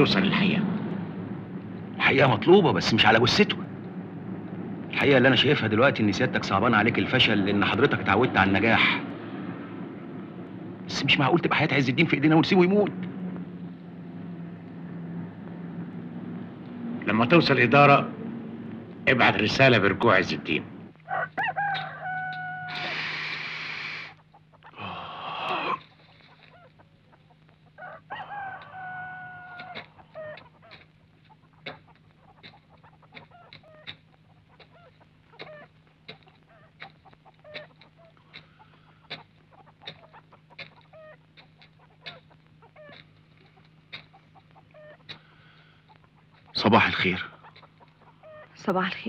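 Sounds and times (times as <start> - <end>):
steady low hum: 0.0 - 49.0
chickens clucking: 19.1 - 49.0
rooster crowing: 21.0 - 24.2, 27.8 - 30.8.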